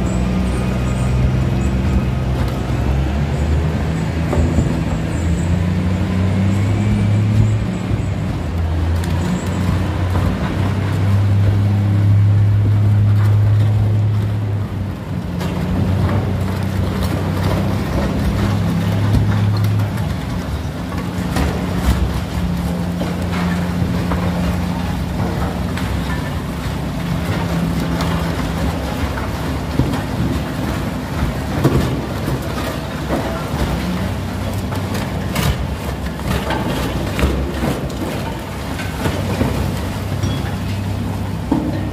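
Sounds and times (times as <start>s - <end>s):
crusher machine droning: 0.0s - 41.9s
ore lumps cracking and knocking: 15.1s - 41.9s.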